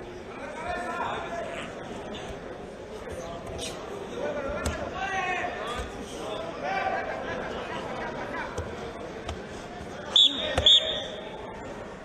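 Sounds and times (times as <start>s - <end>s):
referee whistle blasts: 10.1s - 11.2s.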